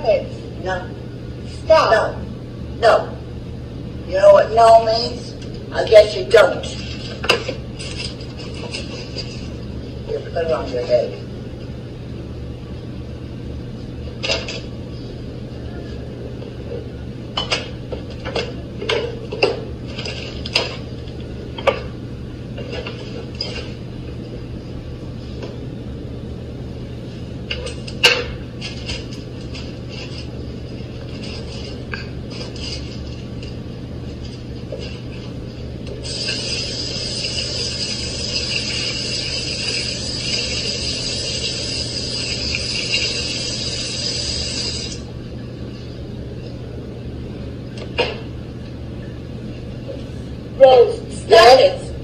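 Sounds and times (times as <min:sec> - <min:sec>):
faucet water splashing: 0:36.0 - 0:45.0.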